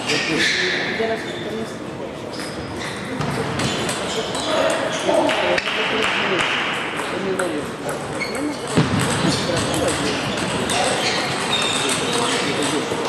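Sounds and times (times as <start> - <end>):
voices talking: 0.0 - 13.0
table tennis balls clicking: 3.3 - 13.0.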